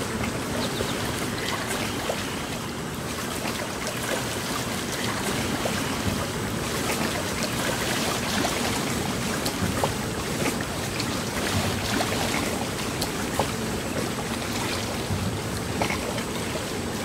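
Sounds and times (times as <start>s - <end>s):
water lapping against rocks: 0.0s - 17.0s.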